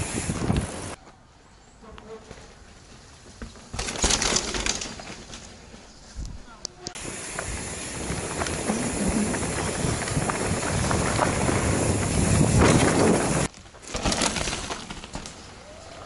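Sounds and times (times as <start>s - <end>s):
bike tyre noise on dirt: 0.0s - 1.1s, 2.0s - 16.0s
wind on microphone: 7.9s - 13.5s.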